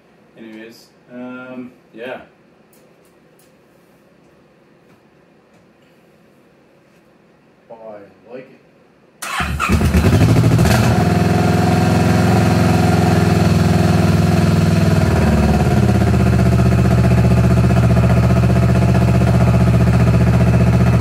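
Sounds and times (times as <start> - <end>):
motorcycle engine starting and idling: 9.2 - 21.0.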